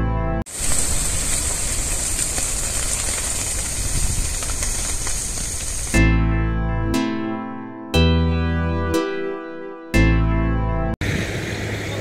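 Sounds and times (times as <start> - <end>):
fire burning with hiss: 0.5 - 6.0.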